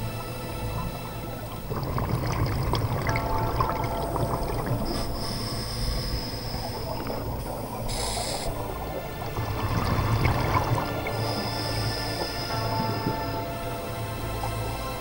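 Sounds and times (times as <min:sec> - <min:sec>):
underwater bubbles gurgling: 0:00.0 - 0:15.0.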